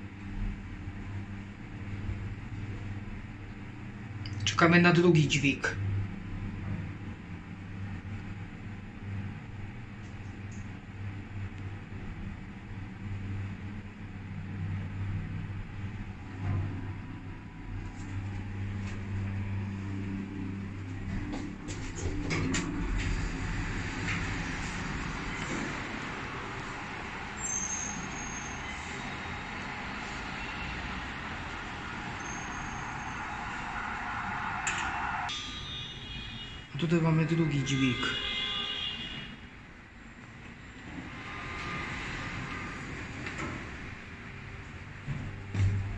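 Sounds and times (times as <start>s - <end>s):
lift humming: 5.8s - 35.7s.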